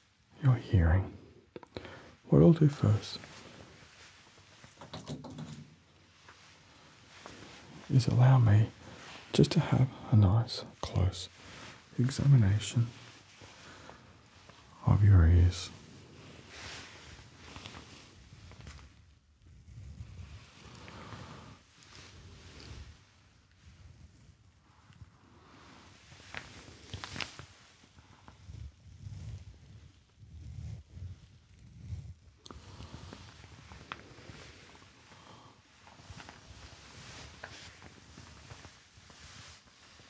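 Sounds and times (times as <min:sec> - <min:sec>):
shirt rustling: 0:25.8 - 0:28.3, 0:32.6 - 0:40.0.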